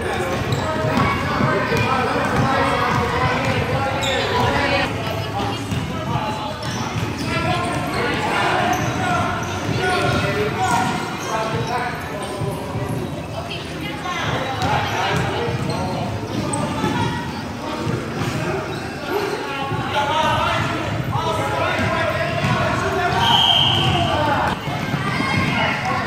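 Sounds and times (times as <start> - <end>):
basketballs bouncing on wooden floor: 0.2 - 8.0, 23.7 - 26.0.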